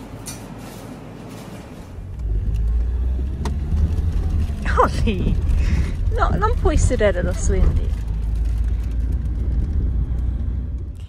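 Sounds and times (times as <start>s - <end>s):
car cabin rumble: 1.9s - 11.0s.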